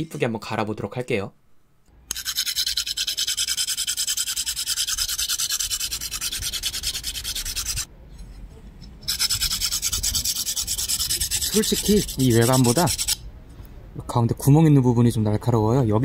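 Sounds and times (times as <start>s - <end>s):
file rasping on metal: 2.1s - 7.9s, 9.1s - 13.2s.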